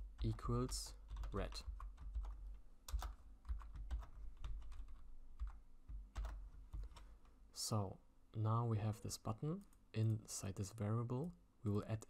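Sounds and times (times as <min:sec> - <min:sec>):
typing on computer keyboard: 0:00.2 - 0:07.2.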